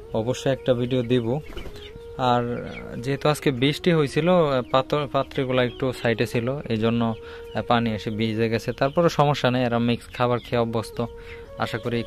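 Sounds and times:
man talking: 0.1s - 1.4s, 2.1s - 12.0s
hens clucking: 0.2s - 12.0s.

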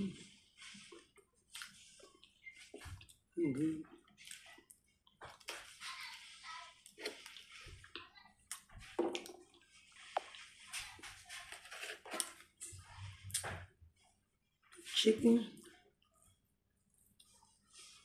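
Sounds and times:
person chewing food: 0.0s - 5.8s, 6.8s - 10.7s.

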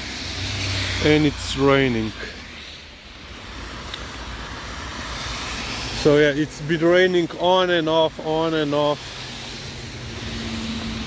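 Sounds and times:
car tyre hiss on wet road: 0.0s - 11.0s.

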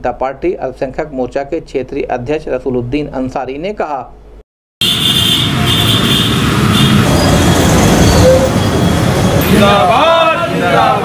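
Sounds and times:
low street rumble: 5.5s - 11.0s.

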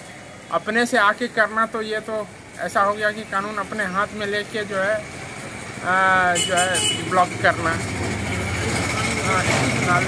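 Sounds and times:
street noise: 0.0s - 10.0s
vehicle engine idling: 4.8s - 10.0s.

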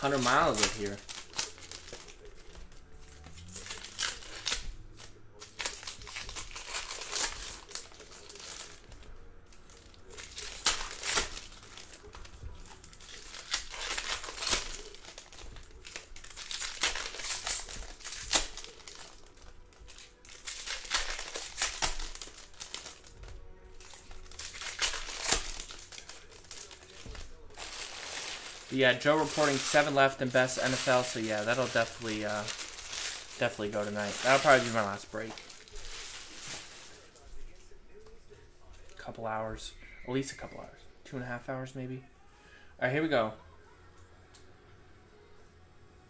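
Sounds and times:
foil wrappers torn and crinkled: 0.0s - 39.0s.

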